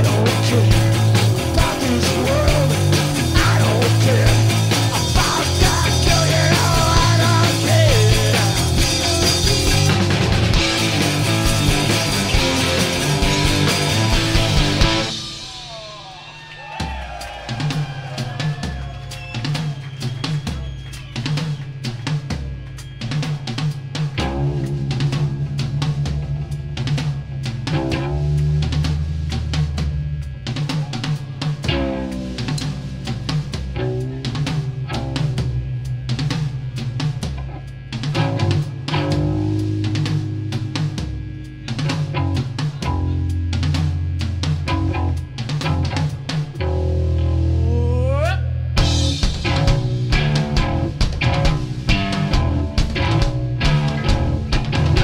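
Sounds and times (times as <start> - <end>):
fast drum kit: 0.0 - 55.0
punk rock band playing: 0.0 - 55.0.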